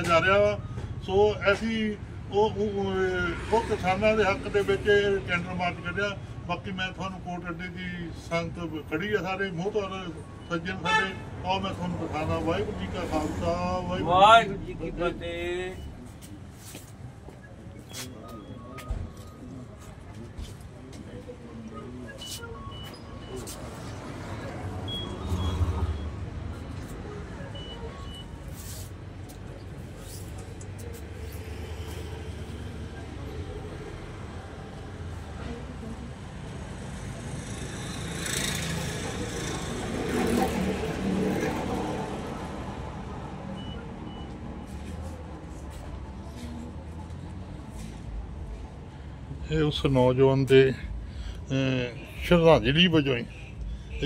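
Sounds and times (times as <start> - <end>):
people talking: 0.0 - 23.8
low traffic hum: 0.0 - 54.0
short high beeps: 22.0 - 23.5, 24.9 - 26.8
vehicle passing by: 23.3 - 27.5, 28.4 - 49.4.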